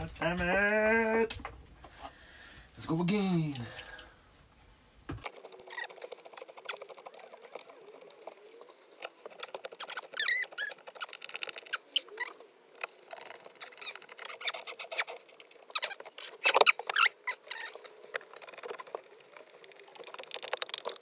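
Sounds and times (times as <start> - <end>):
wood creaks: 5.1 - 21.0
short squeaks: 8.8 - 17.9.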